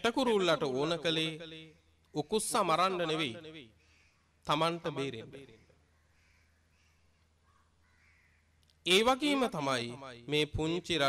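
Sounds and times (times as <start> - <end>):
man speaking: 0.0 - 1.5, 2.2 - 3.5, 4.5 - 5.4, 8.9 - 11.0
faint bird calls: 3.7 - 4.4, 5.4 - 8.7.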